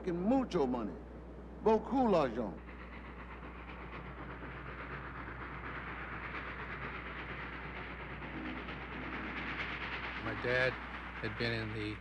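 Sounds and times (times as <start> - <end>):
steam train running on rails: 0.0 - 12.0.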